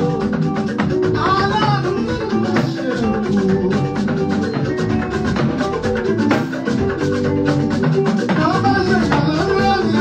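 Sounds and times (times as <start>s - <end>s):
worship band with guitar and drums: 0.0s - 10.0s.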